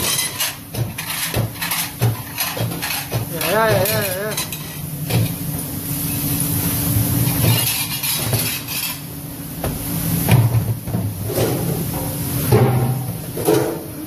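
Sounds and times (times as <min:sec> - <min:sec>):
plates and dish racks clattering: 0:00.0 - 0:05.4, 0:07.3 - 0:09.0, 0:10.3 - 0:14.0
low machine hum: 0:02.7 - 0:07.6.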